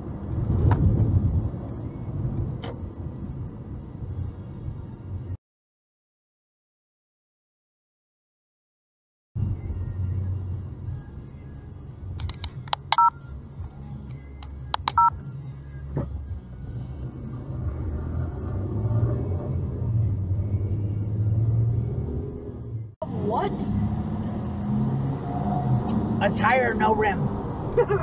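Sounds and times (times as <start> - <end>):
car cabin road rumble: 0.0 - 5.3, 12.1 - 24.9, 25.7 - 28.0
two-tone electronic beeps: 13.0 - 13.2, 14.9 - 15.2.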